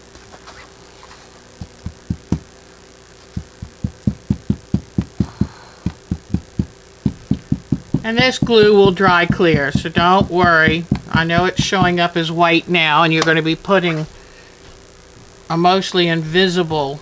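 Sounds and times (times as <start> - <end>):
glue bottle tapping on fabric: 3.4 - 12.0.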